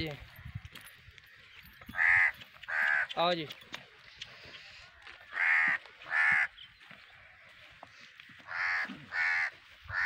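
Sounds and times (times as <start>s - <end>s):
harsh bird calls: 0.0s - 10.0s.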